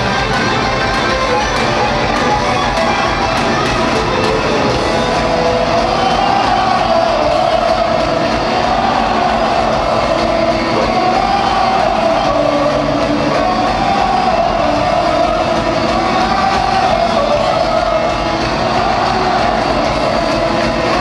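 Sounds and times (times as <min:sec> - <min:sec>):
heavy metal band playing live: 0:00.0 - 0:21.0.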